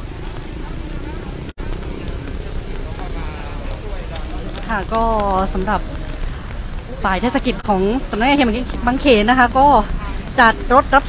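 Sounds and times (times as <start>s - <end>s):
faint background voices: 0.0s - 11.0s
vehicle engines: 0.0s - 11.0s
water splashing on road: 0.0s - 11.0s.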